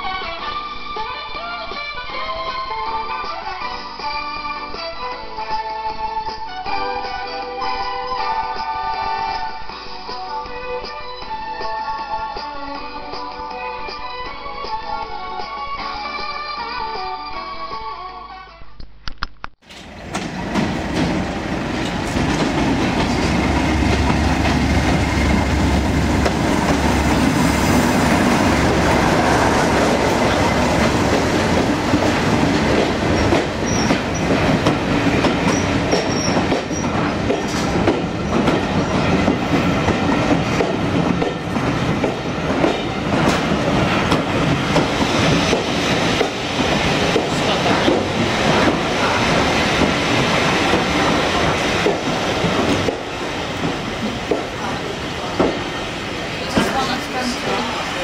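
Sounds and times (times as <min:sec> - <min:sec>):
train wheels clicking over rail joints: 0:19.6 - 0:27.7, 0:28.3 - 0:55.8
diesel locomotive engine rumble: 0:19.6 - 0:58.0
high wheel squeals: 0:33.2 - 0:34.3, 0:35.5 - 0:37.0.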